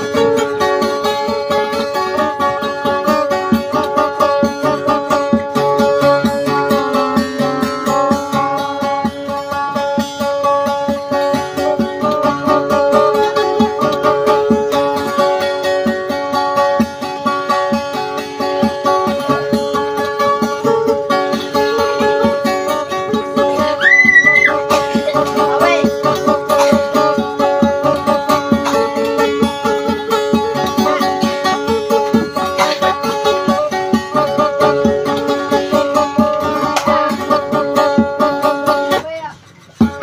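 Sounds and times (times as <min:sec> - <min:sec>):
acoustic guitar fast picking: 0:00.0 - 0:40.0.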